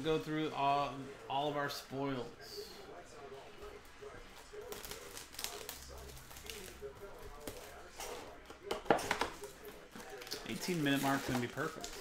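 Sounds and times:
cardboard and plastic rustling: 4.4s - 12.0s.

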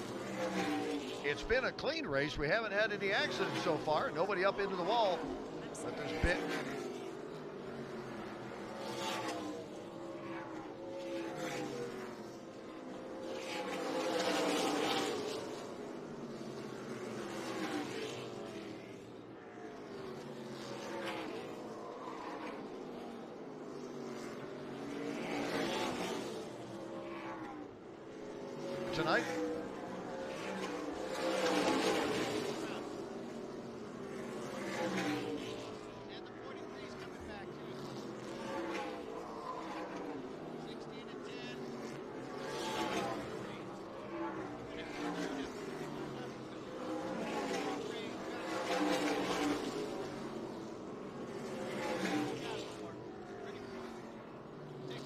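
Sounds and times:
race cars passing: 0.0s - 55.0s.

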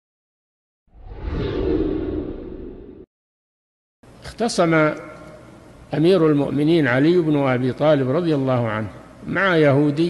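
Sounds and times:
whoosh with low rumble: 0.9s - 3.1s.

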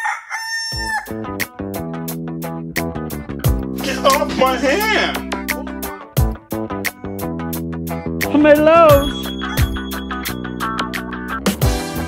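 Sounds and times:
rooster crowing: 0.0s - 1.2s
music with steady beat: 1.1s - 12.0s.

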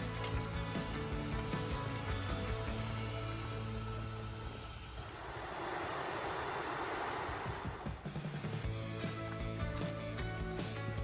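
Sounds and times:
water rushing over waterfall: 5.0s - 8.0s.

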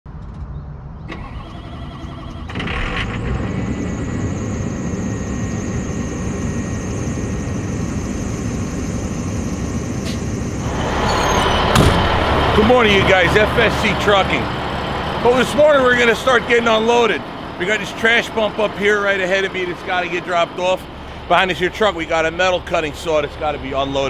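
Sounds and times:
diesel truck engine idling: 1.1s - 24.0s.

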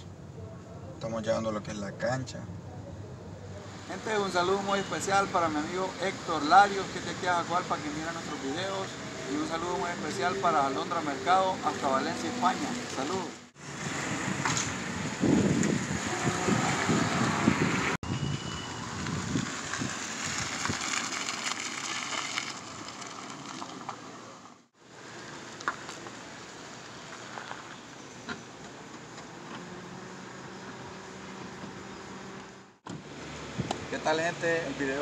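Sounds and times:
car rolling on dirt street: 3.5s - 35.0s
wind rumble on microphone: 13.7s - 21.3s, 33.5s - 33.9s.

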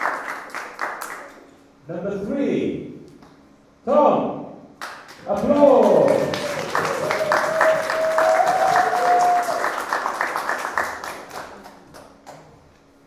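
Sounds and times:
audience applause: 0.0s - 1.3s, 5.2s - 12.1s.

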